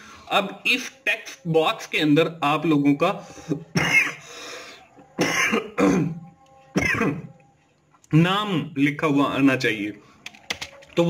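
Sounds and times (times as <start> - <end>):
man clearing his throat: 3.5 - 4.2, 5.2 - 6.2.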